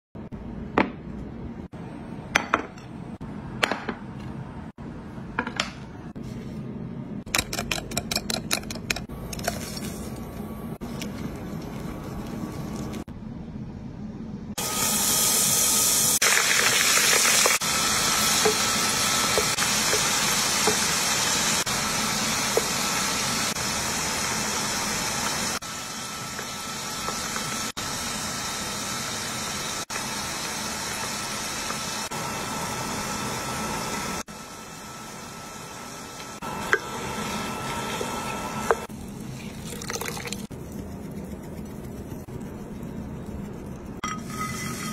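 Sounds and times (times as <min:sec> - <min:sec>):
whisk clicking in a bowl: 0:07.3 - 0:09.1
hot oil sizzling: 0:14.6 - 0:40.5, 0:44.0 - 0:44.9.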